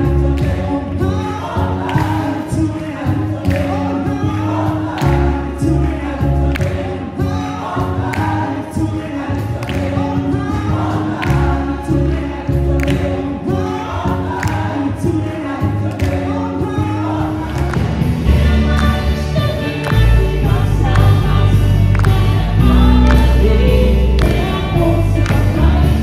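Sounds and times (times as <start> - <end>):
bass notes: 0.0 - 26.0
group singing gospel song: 0.0 - 26.0.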